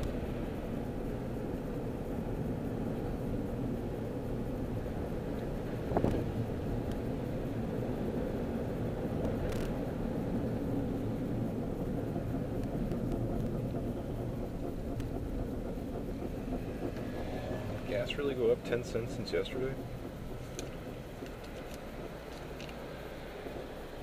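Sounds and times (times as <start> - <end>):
car road and engine noise: 0.0 - 24.0.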